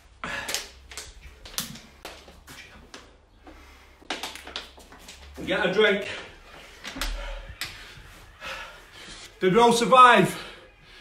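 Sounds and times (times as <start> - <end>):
plastic bottle clicks and crackles: 4.0 - 5.2.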